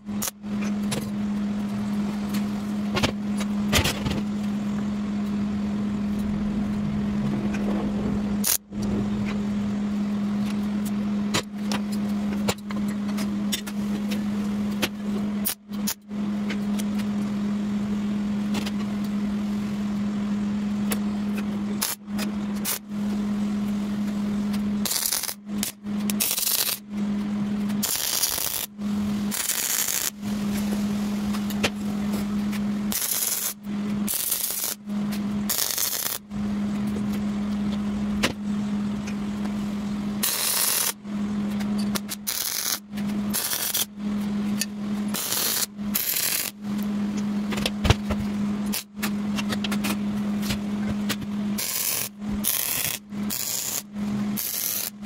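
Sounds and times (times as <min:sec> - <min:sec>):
welder crackling hiss: 0:24.8 - 0:26.8, 0:27.8 - 0:28.7, 0:29.3 - 0:30.7, 0:32.9 - 0:34.8, 0:35.5 - 0:36.2, 0:40.2 - 0:41.0, 0:42.2 - 0:43.9, 0:45.1 - 0:46.5, 0:51.6 - 0:53.8, 0:54.4 - 0:54.9.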